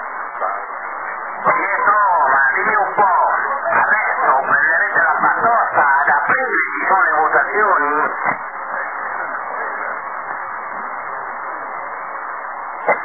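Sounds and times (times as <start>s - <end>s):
radio static hiss: 0.0s - 13.0s
man's voice on radio: 1.4s - 10.0s.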